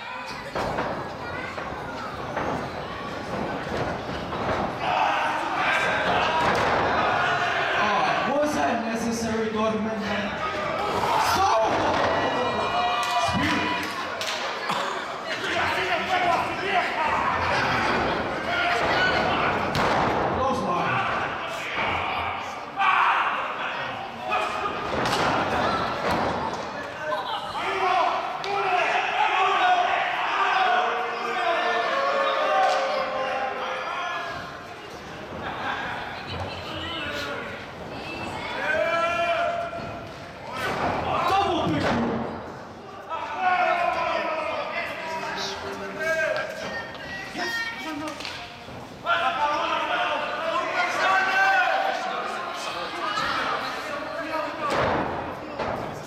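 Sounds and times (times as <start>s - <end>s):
people talking and calling out: 0.0s - 56.0s.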